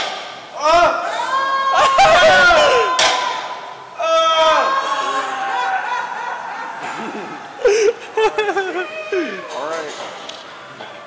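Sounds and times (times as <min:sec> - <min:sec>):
men yelling and cheering: 0:00.6 - 0:07.6.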